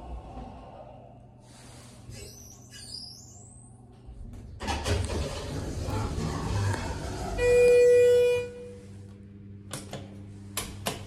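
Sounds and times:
elevator buzzy beep: 7.2s - 8.8s.

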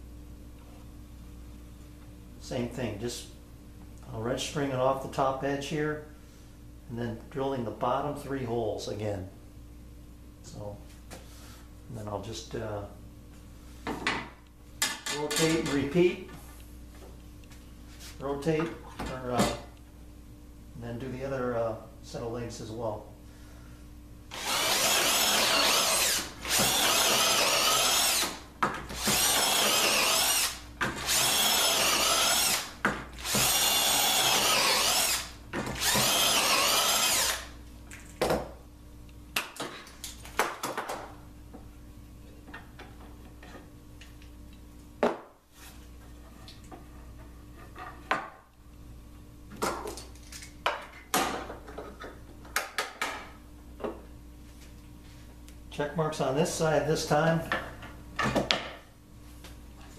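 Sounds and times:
cordless drill boring into wood: 24.3s - 28.4s, 29.0s - 37.5s.

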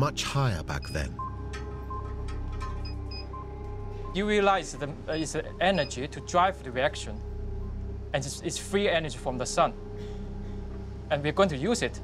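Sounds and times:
low steady drone: 1.2s - 12.0s.

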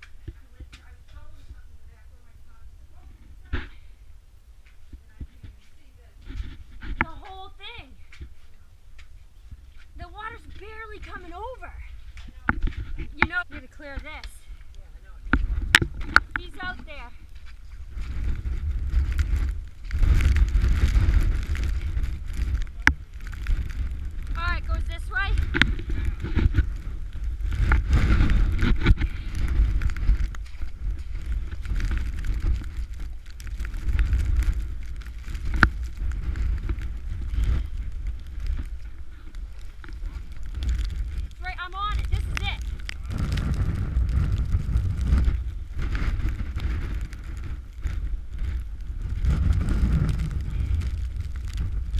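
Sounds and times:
wind buffeting microphone: 0.0s - 51.9s.

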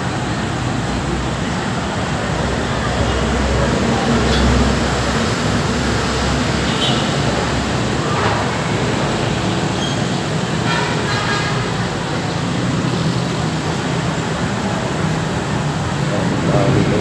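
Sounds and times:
crowd hubbub: 0.0s - 17.0s.

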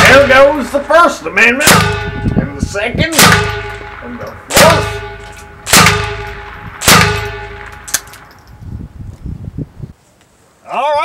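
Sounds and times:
gunshots: 0.0s - 2.4s, 3.0s - 8.3s
metallic ringing: 0.0s - 8.7s.

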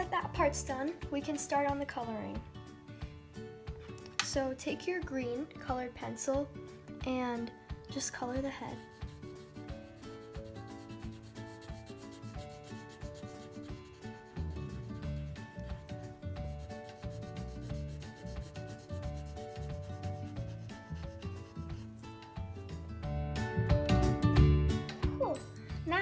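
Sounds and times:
colored pencil shading on paper: 8.4s - 22.2s.

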